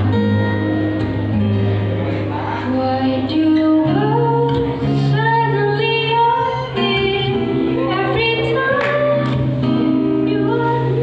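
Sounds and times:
acoustic guitars: 0:00.0 - 0:11.0
woman singing: 0:02.7 - 0:11.0.

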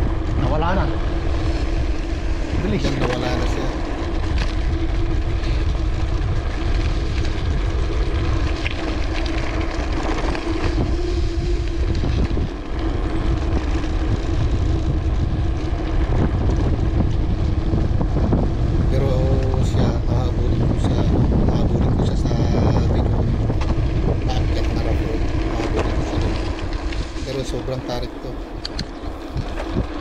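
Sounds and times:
bike tyres rumbling on concrete: 0:00.0 - 0:30.0
steady hum: 0:00.0 - 0:30.0
wind buffeting microphone: 0:00.0 - 0:30.0.

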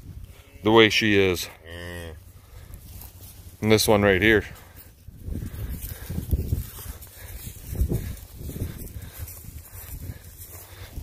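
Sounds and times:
cows rustling in straw: 0:00.3 - 0:11.0.

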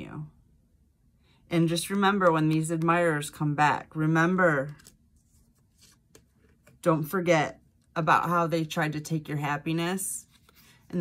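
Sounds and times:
woman speaking: 0:00.0 - 0:00.4, 0:01.5 - 0:04.8, 0:06.8 - 0:10.3
cards rustling: 0:04.6 - 0:06.8.

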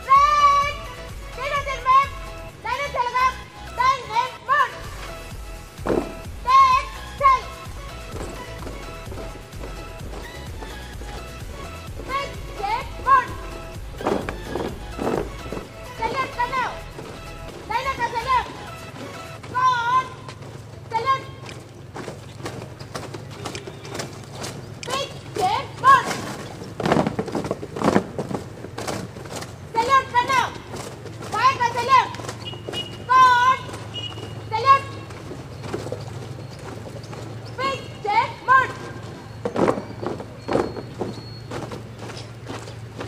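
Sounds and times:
shouted drill command: 0:00.0 - 0:04.9, 0:06.4 - 0:07.7, 0:12.0 - 0:13.6, 0:15.9 - 0:16.8, 0:17.6 - 0:18.7, 0:19.4 - 0:20.3, 0:33.0 - 0:33.8, 0:34.5 - 0:35.1
high-pitched voices calling: 0:00.0 - 0:28.4, 0:29.3 - 0:43.0
boots marching in step: 0:00.2 - 0:43.0.

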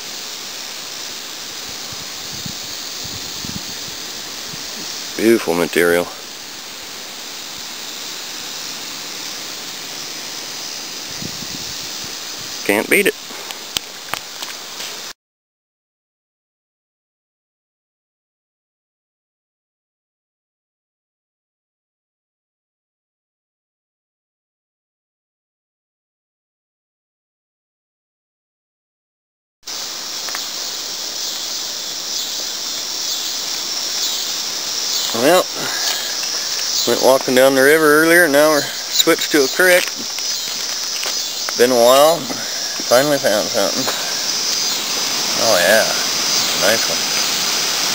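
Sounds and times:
river water rushing: 0:00.0 - 0:11.1, 0:29.7 - 0:47.9
insects chirring shrilly: 0:00.0 - 0:15.2, 0:29.6 - 0:47.9.

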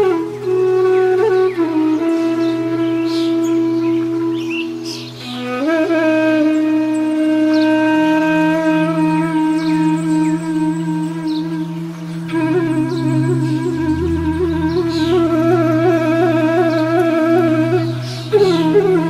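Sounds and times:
flute holding long notes: 0:00.0 - 0:19.0
soft low drone: 0:09.9 - 0:19.0.

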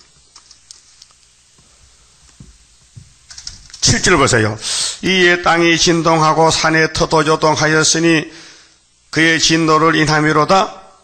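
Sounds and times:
man speaking loudly: 0:03.8 - 0:08.4, 0:09.1 - 0:11.0.

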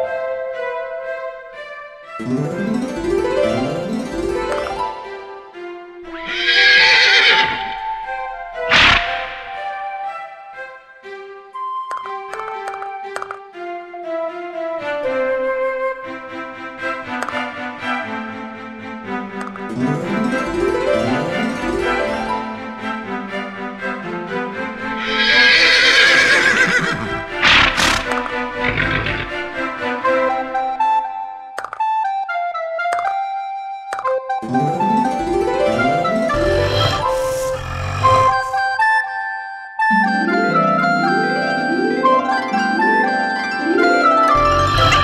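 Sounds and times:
light background music: 0:00.0 - 0:45.0
horse whinny: 0:06.1 - 0:07.8, 0:24.9 - 0:29.6, 0:36.3 - 0:38.6, 0:44.4 - 0:45.0.

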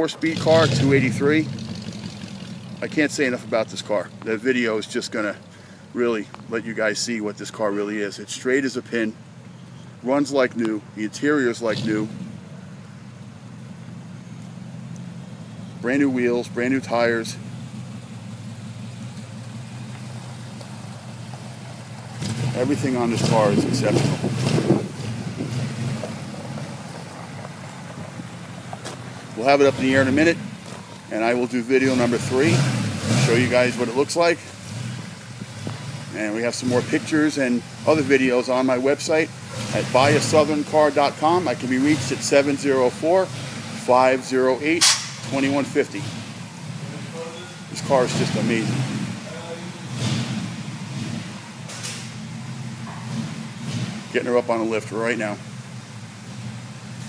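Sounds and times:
engine low rumble: 0:00.0 - 0:57.0.

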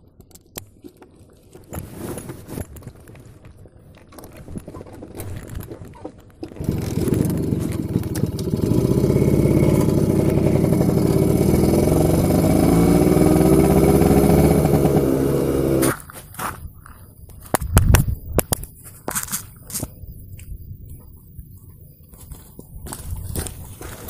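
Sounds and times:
motor scooter engine: 0:06.6 - 0:16.0.

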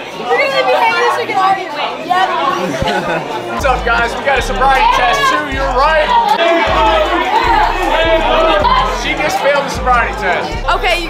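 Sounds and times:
people talking: 0:00.0 - 0:11.0
music with deep bass line: 0:03.6 - 0:11.0.

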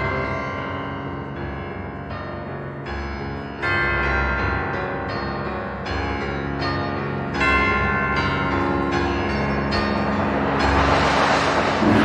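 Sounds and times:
bell-like piano chords: 0:00.0 - 0:12.0
noisy metallic swell: 0:09.4 - 0:12.0.

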